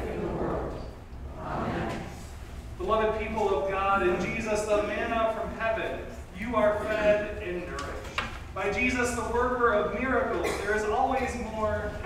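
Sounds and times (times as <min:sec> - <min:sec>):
man reading aloud in church: 0:01.8 - 0:12.0.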